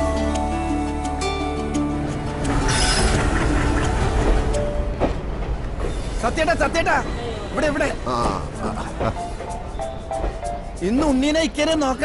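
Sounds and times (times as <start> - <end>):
train rumble with rail clatter: 2.4 - 12.0.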